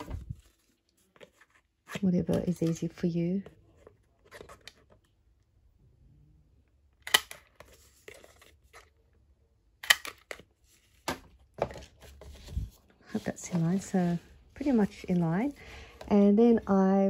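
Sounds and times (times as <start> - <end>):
paper rustling: 10.3 - 16.1.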